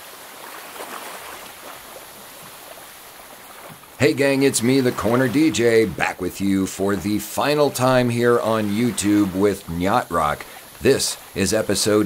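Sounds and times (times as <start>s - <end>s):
small water splashes: 0.0s - 12.0s
wash of water: 0.0s - 12.0s.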